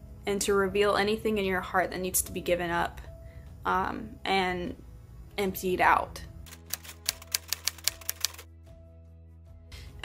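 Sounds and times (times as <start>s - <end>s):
typewriter key clacks: 6.5s - 8.4s.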